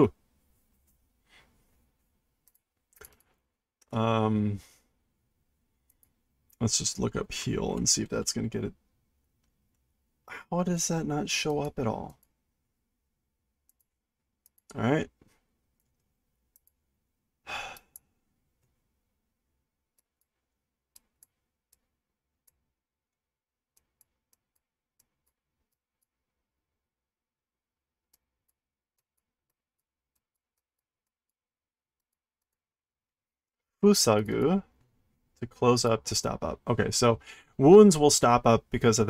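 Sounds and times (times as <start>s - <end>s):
faint breath: 1.2s - 1.7s, 17.5s - 18.0s, 37.2s - 37.6s
man sighing: 17.4s - 18.0s.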